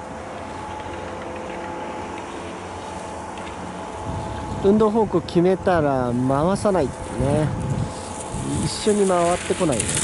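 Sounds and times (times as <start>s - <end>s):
constant hiss: 0.0s - 10.0s
steady mechanical hum: 0.0s - 10.0s.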